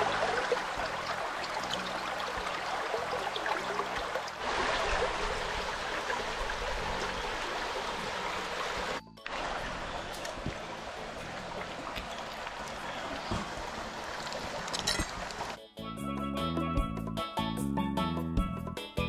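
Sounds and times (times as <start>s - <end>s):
stream running over pebbles: 0.0s - 15.6s
background music: 0.0s - 19.0s.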